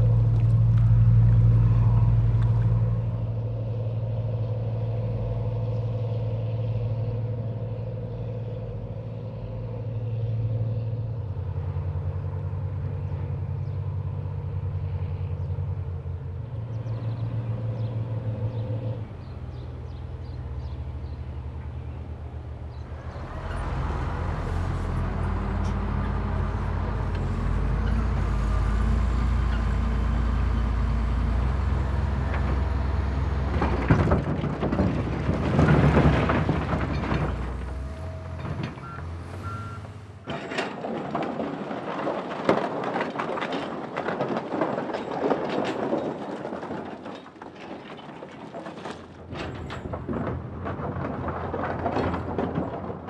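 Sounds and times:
heavy diesel machines droning: 0.0 - 53.0
rocks grinding and clattering: 22.7 - 39.4, 40.2 - 53.0
stones knocking and clattering: 40.3 - 53.0.

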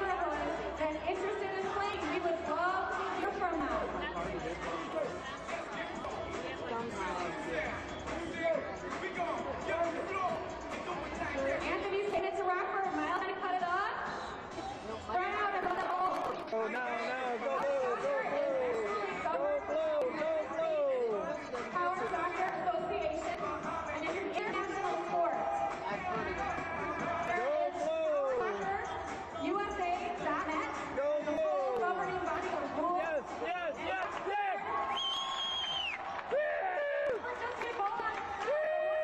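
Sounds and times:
crowd noise in arena: 0.0 - 39.0
indistinct chatter: 0.0 - 39.0.

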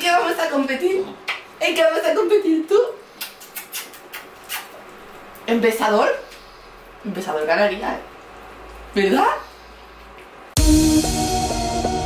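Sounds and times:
wet kissing smacks: 3.2 - 4.8.

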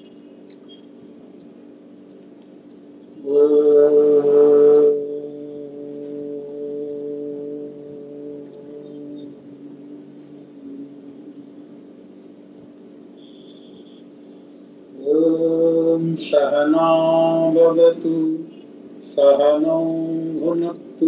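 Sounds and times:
man chanting om: 3.2 - 11.9, 14.9 - 21.0.

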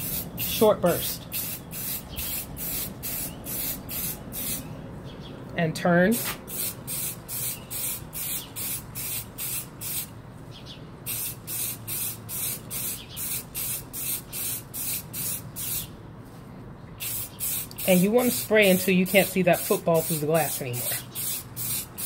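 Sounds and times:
spray paint can hissing: 0.0 - 4.7, 6.2 - 10.1, 11.1 - 15.9, 17.0 - 22.0.

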